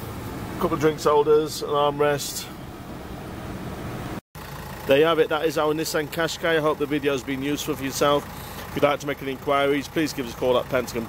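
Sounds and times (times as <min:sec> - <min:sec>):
man's voice: 0:04.9 - 0:08.2, 0:08.8 - 0:11.0.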